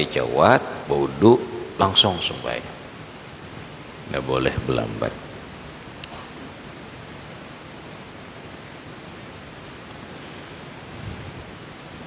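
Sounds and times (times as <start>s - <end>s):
microphone noise hiss: 0.0s - 12.0s.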